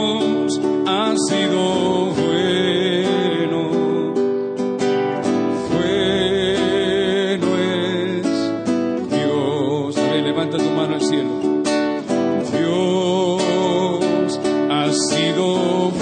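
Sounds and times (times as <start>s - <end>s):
acoustic guitar strumming: 0.0s - 16.0s.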